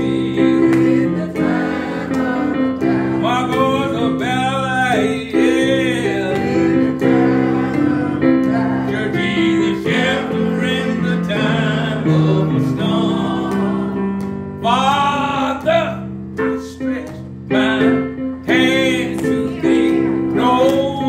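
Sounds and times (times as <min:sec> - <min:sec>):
elderly man singing gospel: 0:00.0 - 0:21.0
instrumental backing: 0:00.0 - 0:21.0.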